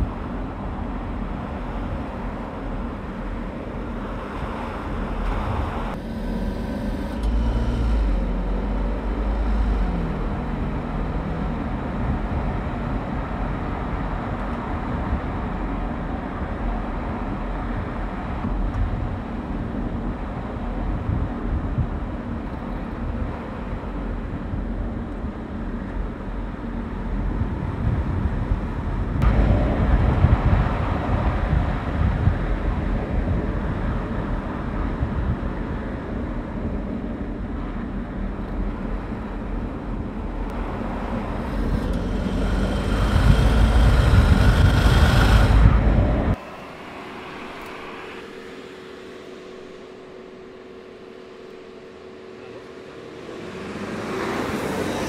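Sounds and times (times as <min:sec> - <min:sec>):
car driving past: 0:40.5 - 0:55.0.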